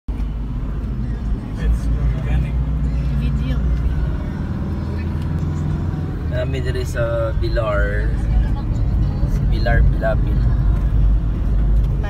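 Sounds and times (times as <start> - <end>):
vehicle engine and road noise: 0.1 - 12.0.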